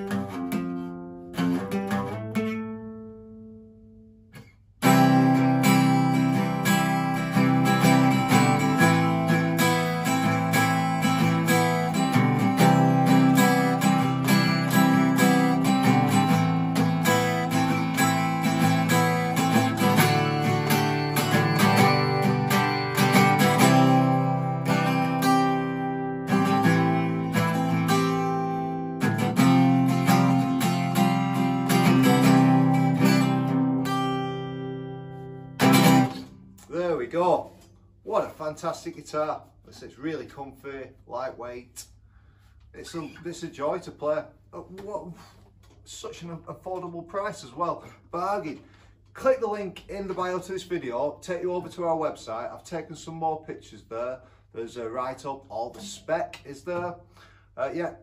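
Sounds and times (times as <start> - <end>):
acoustic guitar strumming: 0.0 - 38.3, 55.0 - 57.8.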